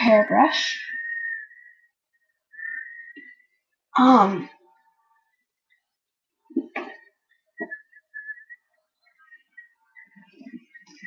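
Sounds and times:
faint high whistling: 0.8s - 3.5s, 7.6s - 11.0s.

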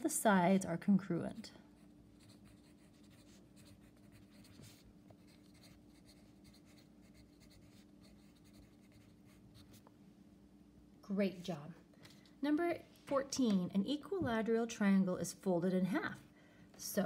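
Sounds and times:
steady low hum: 0.0s - 17.0s
pencil scratching on paper: 1.8s - 9.8s.

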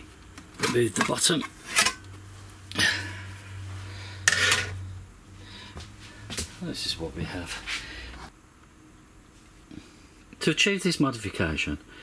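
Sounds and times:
metal cover plate clattering: 4.3s - 4.8s.

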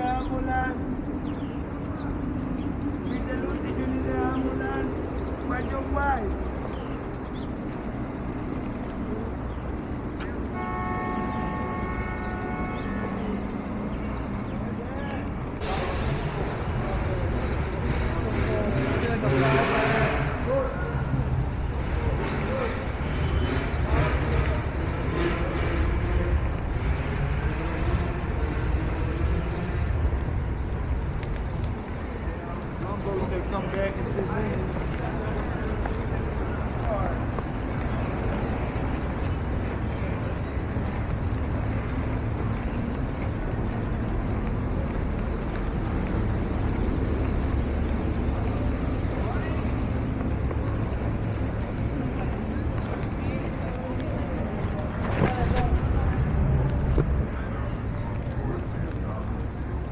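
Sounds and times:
people talking: 0.0s - 1.0s, 1.8s - 8.1s, 11.3s - 23.0s, 30.0s - 59.9s
traffic noise: 0.0s - 59.9s
vehicle passing: 0.0s - 59.9s.

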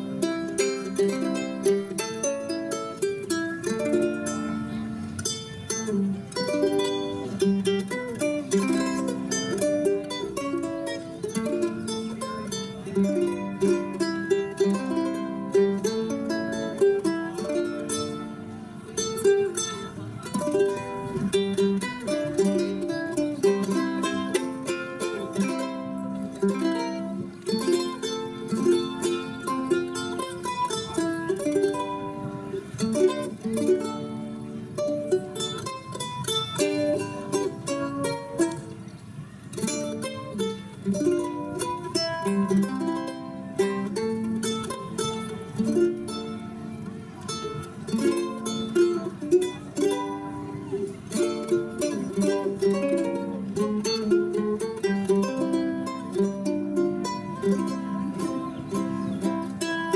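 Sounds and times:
ukulele playing country ballad: 0.0s - 59.9s.

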